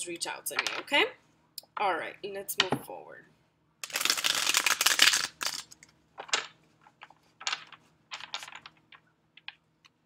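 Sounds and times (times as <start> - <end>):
cards shuffling ripple: 3.8 - 9.5.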